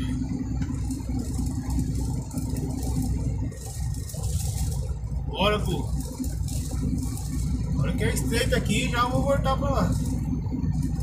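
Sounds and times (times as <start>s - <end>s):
cab rattling: 0.0s - 11.0s
truck diesel engine drone: 0.0s - 11.0s.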